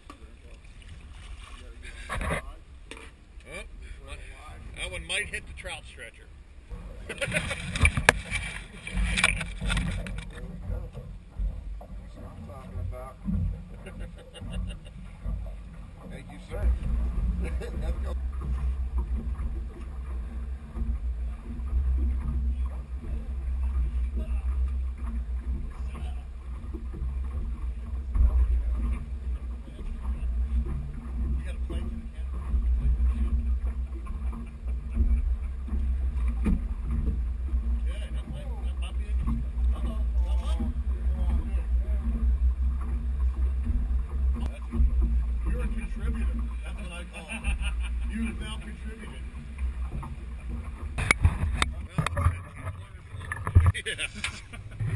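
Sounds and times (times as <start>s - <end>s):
water slapping hull: 0.0s - 54.9s
scattered knocks: 6.7s - 53.8s.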